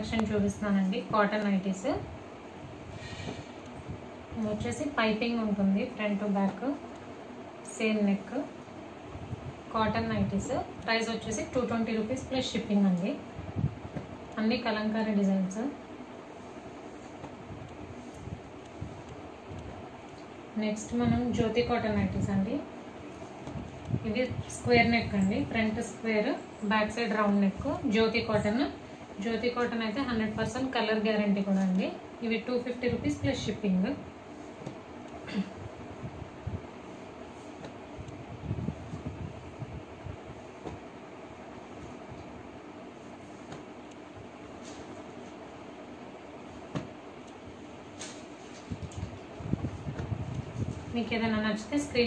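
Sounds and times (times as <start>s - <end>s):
background hiss: 0.0s - 52.0s
low background rumble: 0.0s - 52.0s
cloth rustling: 16.2s - 19.9s, 33.5s - 51.6s
dull bumps on floor: 46.7s - 47.0s.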